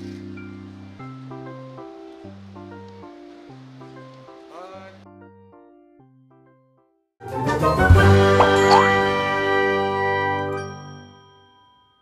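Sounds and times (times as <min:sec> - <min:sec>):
bright bell-like chord: 0:08.4 - 0:09.1.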